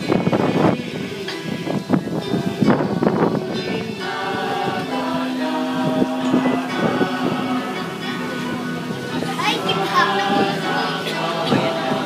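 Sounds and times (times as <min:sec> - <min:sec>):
children talking: 0:00.0 - 0:12.0
group singing a hymn: 0:00.0 - 0:12.0.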